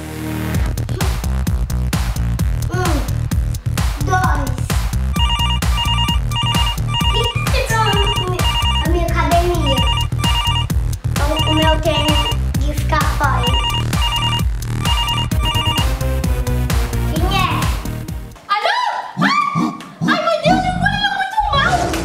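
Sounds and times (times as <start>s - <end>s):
background music: 0.0s - 18.5s
phone ringtone beeps: 5.1s - 9.0s, 9.6s - 12.4s, 13.4s - 16.0s.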